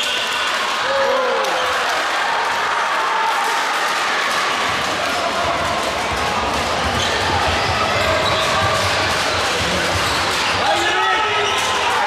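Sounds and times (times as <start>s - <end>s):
crowd noise and voices: 0.0s - 12.0s.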